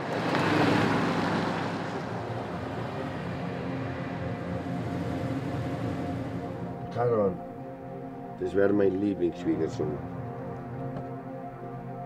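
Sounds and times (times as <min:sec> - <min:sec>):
car driving on wet road: 0:00.0 - 0:06.8
sustained music drone: 0:00.0 - 0:12.0.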